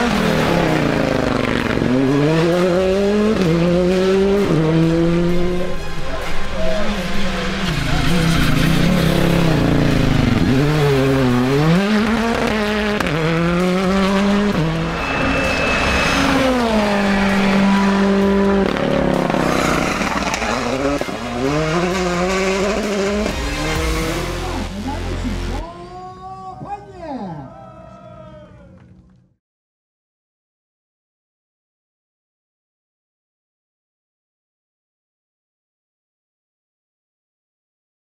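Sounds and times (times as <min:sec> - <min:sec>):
rally car engine revving: 0:00.0 - 0:25.7.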